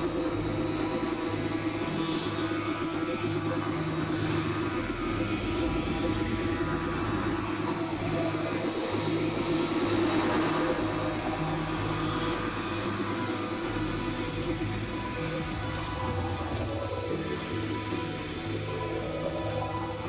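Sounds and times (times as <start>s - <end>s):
noisy synthesizer drone: 0.0s - 20.0s.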